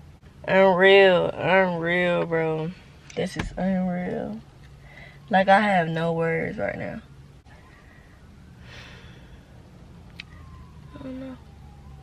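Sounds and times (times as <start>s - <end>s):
car cabin hum: 0.0s - 4.7s
woman sighing: 8.6s - 9.5s.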